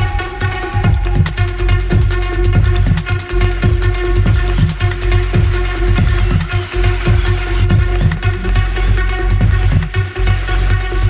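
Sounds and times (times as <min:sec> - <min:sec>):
fast kick drum: 0:00.0 - 0:11.0
ticking high percussion: 0:00.0 - 0:11.0.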